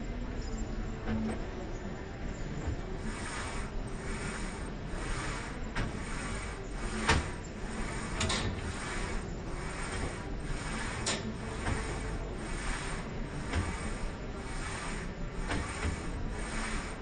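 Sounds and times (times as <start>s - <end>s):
weight machine sliding: 2.5s - 17.0s.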